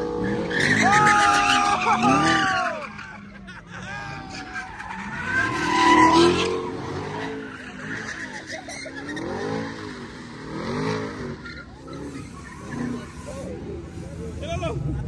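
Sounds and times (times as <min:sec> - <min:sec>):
tires squealing: 0:00.0 - 0:15.0
car engine revving: 0:04.0 - 0:15.0.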